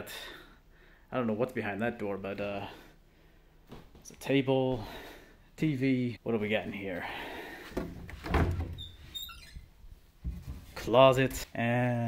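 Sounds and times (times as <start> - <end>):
sliding door squeaking: 8.3 - 9.7.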